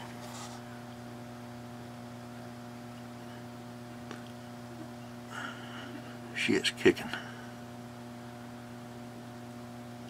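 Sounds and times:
inverter humming: 0.0 - 10.0.

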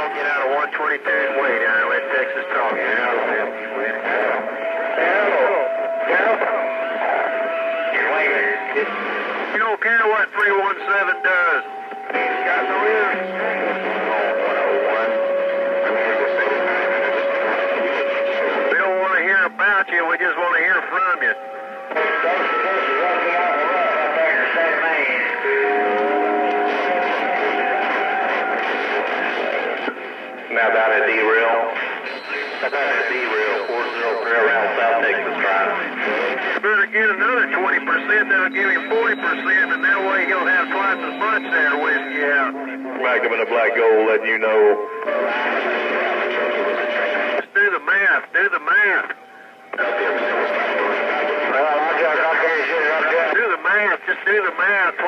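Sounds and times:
unintelligible voices over radio: 0.0 - 29.8, 30.5 - 55.0
whistling radio tones: 0.0 - 55.0.

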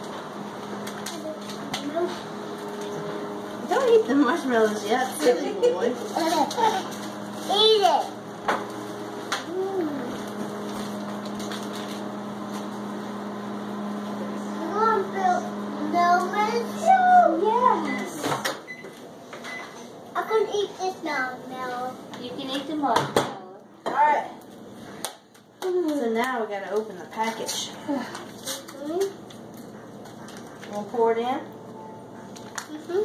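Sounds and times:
room noise hum: 0.0 - 33.0.

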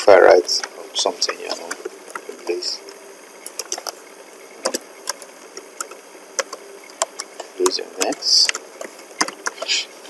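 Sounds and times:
steady background hiss: 0.0 - 10.0
keyboard keys clicking: 4.6 - 9.8.

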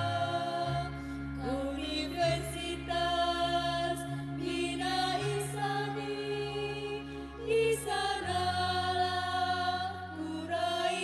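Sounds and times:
slow anthem singing: 0.0 - 11.0
sustained instrumental accompaniment: 0.0 - 11.0.

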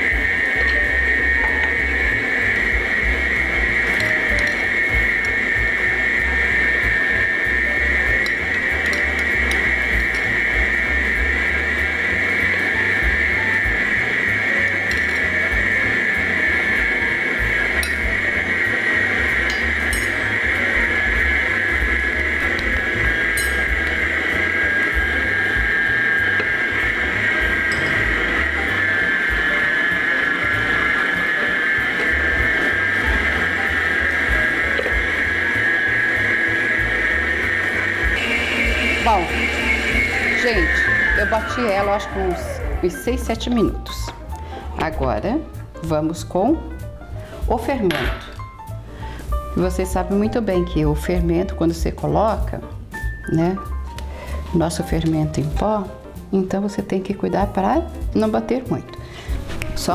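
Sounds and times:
stand mixer motor whining: 0.0 - 44.7.

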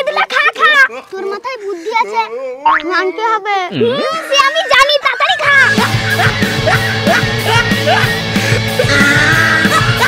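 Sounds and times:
child making vocal sounds: 0.6 - 5.9.

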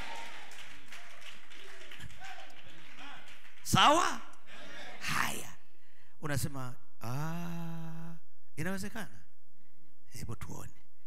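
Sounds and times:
congregation applauding: 0.0 - 4.2.

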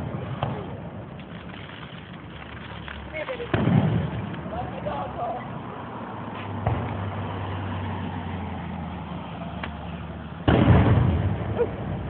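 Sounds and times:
loud firework bang: 3.5 - 4.4, 6.6 - 7.0, 10.4 - 11.6.

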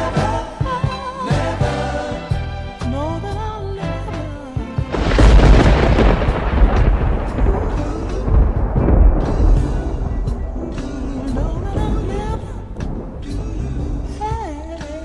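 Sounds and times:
music: 0.0 - 15.0
thunderclap with deep rumble: 4.9 - 15.0.

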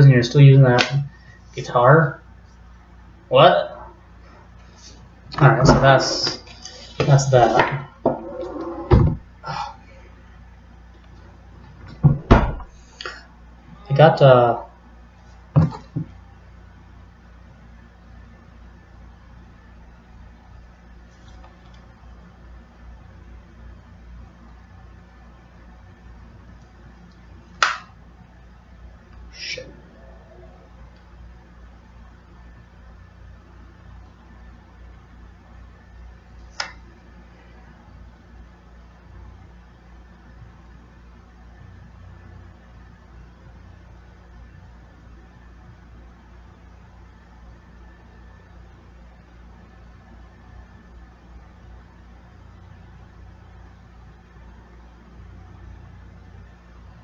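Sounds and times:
low electrical hum with hiss: 0.0 - 57.0
faint murmur: 29.3 - 31.0.

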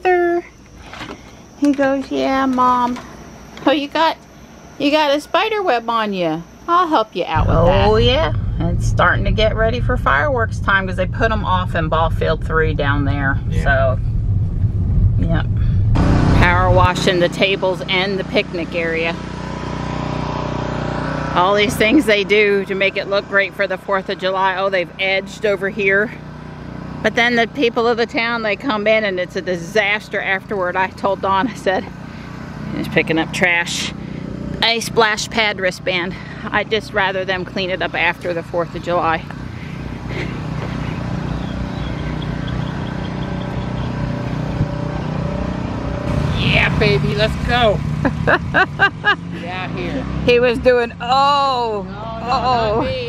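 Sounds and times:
pressure washer engine running: 16.0 - 50.9.

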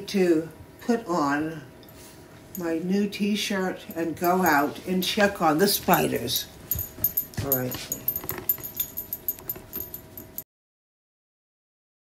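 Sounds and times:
jingling and rattling handling noise: 3.7 - 10.4.

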